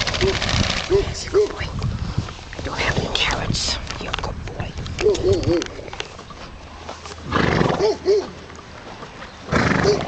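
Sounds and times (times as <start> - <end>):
dogs barking: 0.2 - 1.6, 7.7 - 8.4, 9.8 - 10.0.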